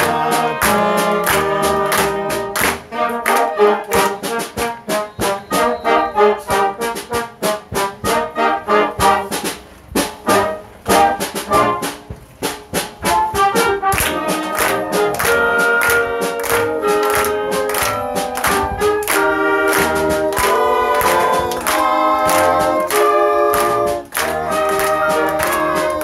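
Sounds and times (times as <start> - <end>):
wind band playing: 0.0 - 26.0.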